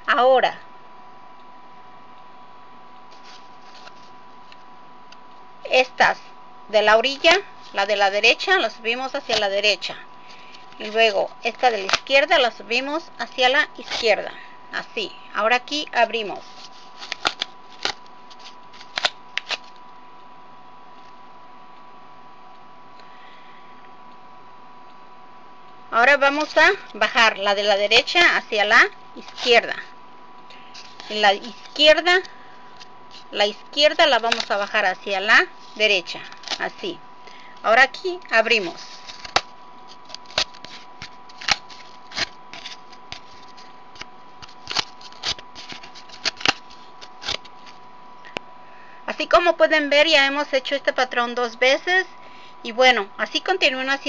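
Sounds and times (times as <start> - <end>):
rustling scrapes: 3.1 - 4.2, 13.2 - 14.2, 16.3 - 19.7, 29.2 - 29.7, 30.7 - 31.9, 38.5 - 43.8, 44.4 - 47.8.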